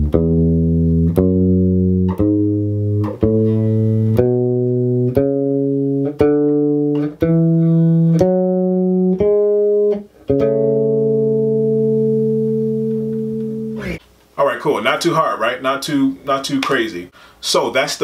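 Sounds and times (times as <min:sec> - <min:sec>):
electric bass playing a scale: 0:00.0 - 0:14.0.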